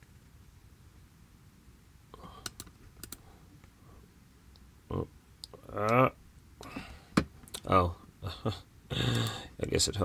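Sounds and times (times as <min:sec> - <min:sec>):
computer mouse clicking: 0:02.4 - 0:03.2
man's wordless vocal sounds: 0:04.9 - 0:06.9.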